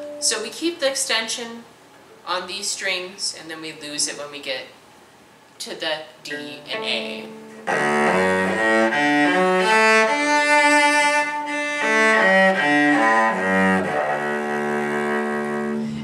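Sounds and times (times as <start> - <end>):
bowed cello arpeggio: 6.7 - 16.0.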